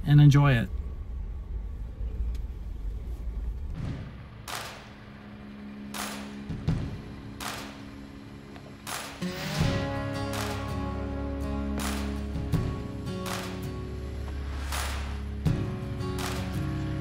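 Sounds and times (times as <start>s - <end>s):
music with heavy hits: 3.7s - 17.0s.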